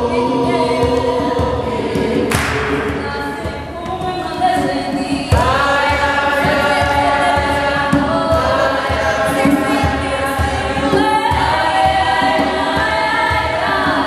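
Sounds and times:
group singing in harmony: 0.0 - 14.0.

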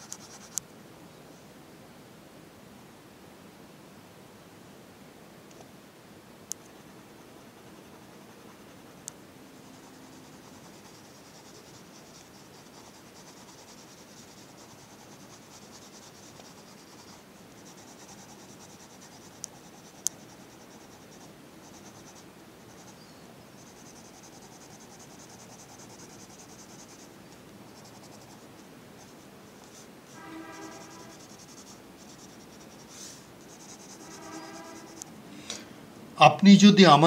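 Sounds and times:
colour pencil scratching on paper: 0.0 - 0.6, 6.8 - 23.0, 23.6 - 35.2.

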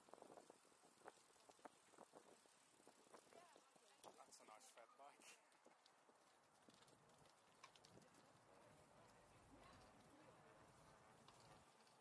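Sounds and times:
bicycle rolling and clicking: 0.0 - 12.0.

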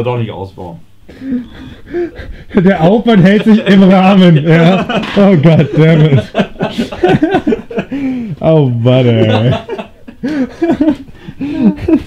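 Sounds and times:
man laughing: 1.1 - 8.3, 9.1 - 12.0.

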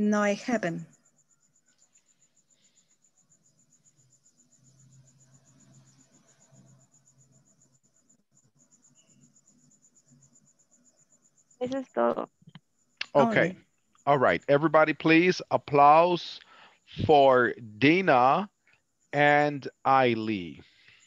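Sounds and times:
cricket chirping: 0.0 - 21.0
person speaking: 11.6 - 12.3, 13.0 - 18.4, 19.2 - 20.6.

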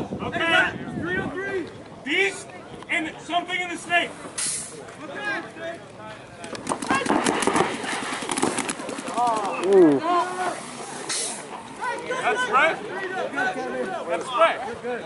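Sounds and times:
players shouting: 11.4 - 14.8.

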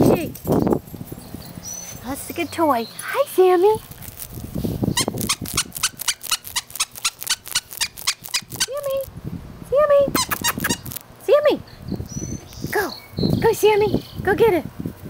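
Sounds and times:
squeaky toy squeaking: 4.9 - 9.1, 10.2 - 11.0.

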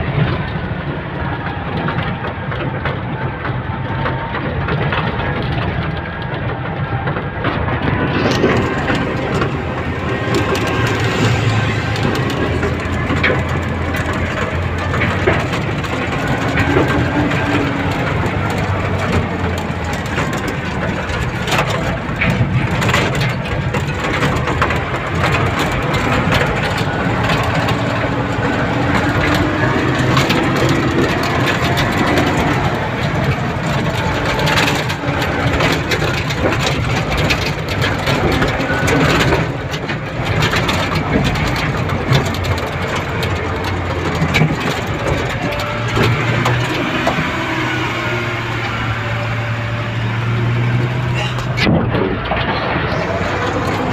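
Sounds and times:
knocks and rattles of truck: 0.0 - 53.9
truck engine running: 0.0 - 53.9.

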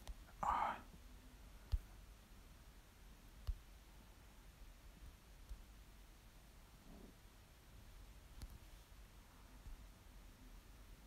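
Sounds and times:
person whispering breathily: 0.3 - 0.9.

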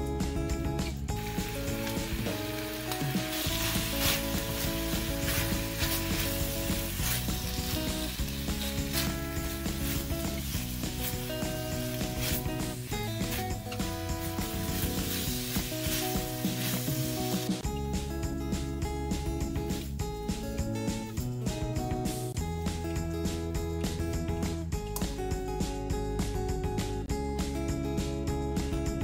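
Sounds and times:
background music: 0.0 - 29.0
food sizzling in a wok: 1.1 - 17.7
spatula scraping a wok: 1.2 - 17.6.

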